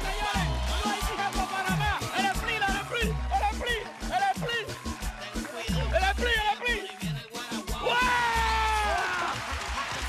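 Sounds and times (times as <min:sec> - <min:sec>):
music with low bass: 0:00.0 - 0:09.0.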